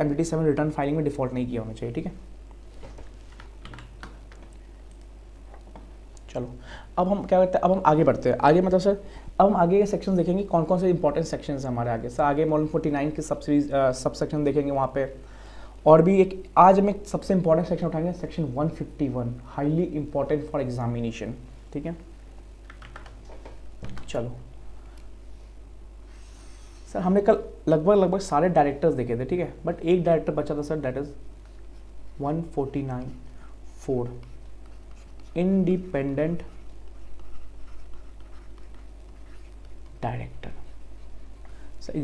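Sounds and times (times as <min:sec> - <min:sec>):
steady low hum: 0:00.0 - 0:42.0
computer keyboard taps: 0:03.6 - 0:05.1, 0:22.6 - 0:24.1.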